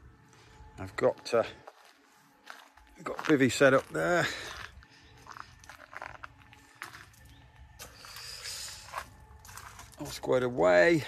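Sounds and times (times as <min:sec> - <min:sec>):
footsteps crunching on gravel: 0:00.6 - 0:11.0.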